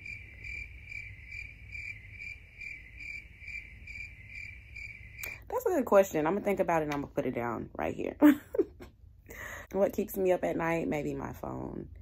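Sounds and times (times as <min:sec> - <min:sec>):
crickets chirping: 0:00.0 - 0:05.4
low hum: 0:00.0 - 0:09.7.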